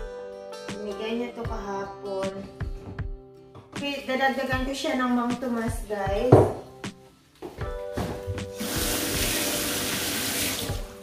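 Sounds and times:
kitchen tap running: 8.5s - 11.0s.

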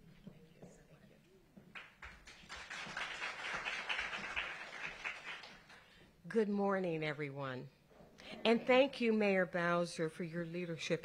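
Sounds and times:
audience applauding: 1.7s - 5.9s.

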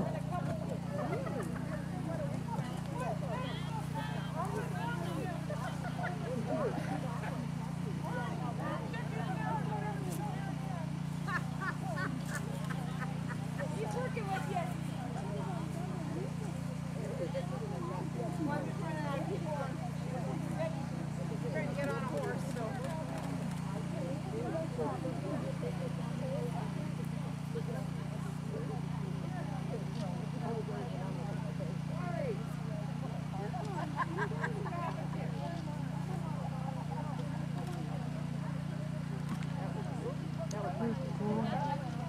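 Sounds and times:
people chattering: 0.0s - 42.0s.

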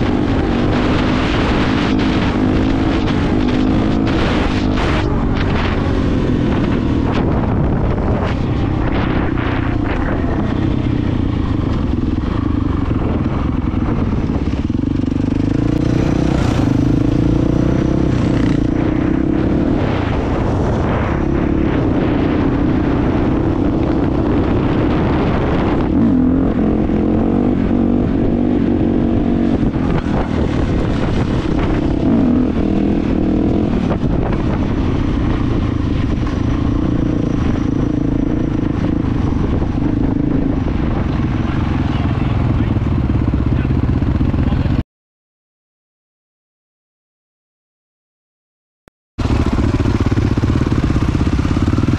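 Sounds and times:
dirt bike engine revving: 0.0s - 44.7s.

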